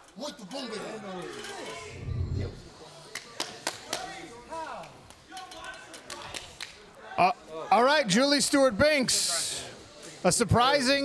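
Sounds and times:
indistinct voices: 1.6 - 3.0.

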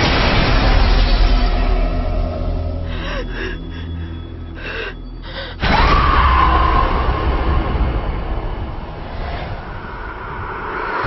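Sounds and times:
low dark drone: 0.0 - 11.0
sharp gasping breaths: 2.8 - 5.6.

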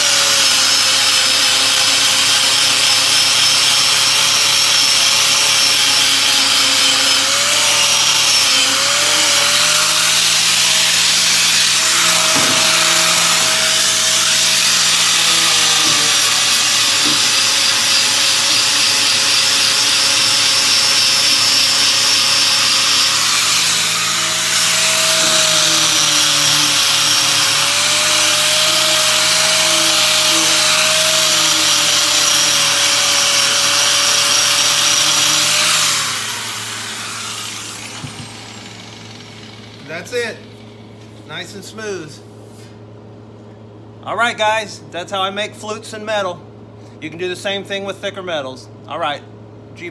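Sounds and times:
angle grinder sanding sheet steel: 0.0 - 40.8.

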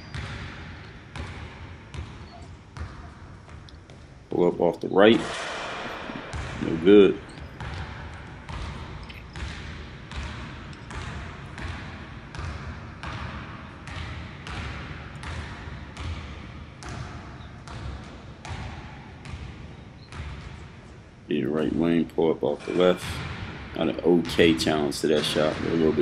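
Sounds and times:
basketball bouncing on hardwood floor: 0.0 - 4.2, 5.1 - 20.6.

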